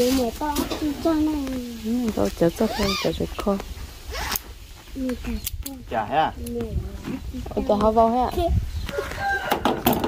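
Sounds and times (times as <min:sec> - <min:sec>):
strap pulled through ratchet buckle: 0:04.1 - 0:04.4.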